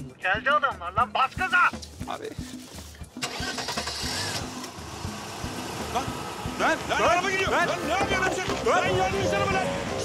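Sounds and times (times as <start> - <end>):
van engine starting and running: 3.2 - 10.0.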